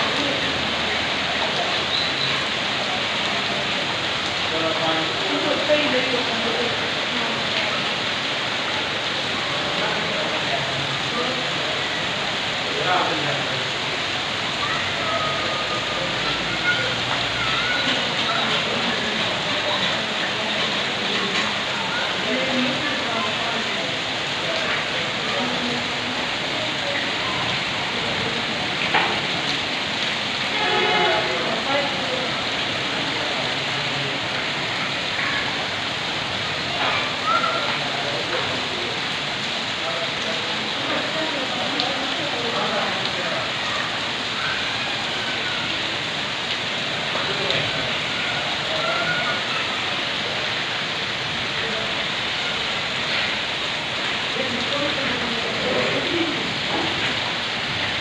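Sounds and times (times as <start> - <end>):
heavy rain on concrete: 0.0 - 58.0
faint voice: 36.7 - 39.1, 47.1 - 50.9.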